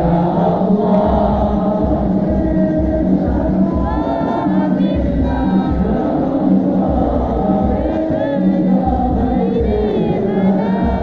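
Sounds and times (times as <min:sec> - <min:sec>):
crowd of men singing: 0:00.0 - 0:11.0
low drum beat: 0:00.0 - 0:11.0.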